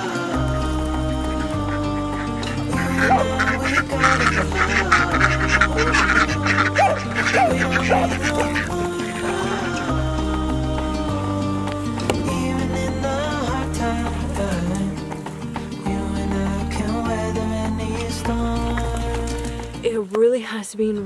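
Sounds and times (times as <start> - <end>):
background music with bass line: 0.0 - 19.9
ducks quacking: 0.4 - 10.1.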